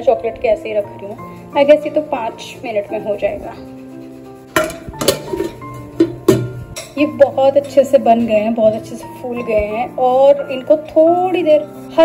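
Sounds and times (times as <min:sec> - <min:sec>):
background music: 0:00.0 - 0:12.0
steel cookware clinking: 0:04.5 - 0:07.9.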